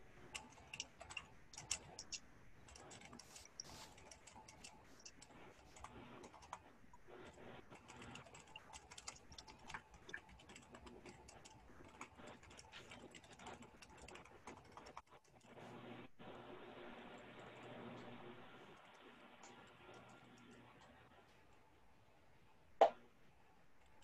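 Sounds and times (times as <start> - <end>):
typing on computer keyboard: 0.2 - 15.6.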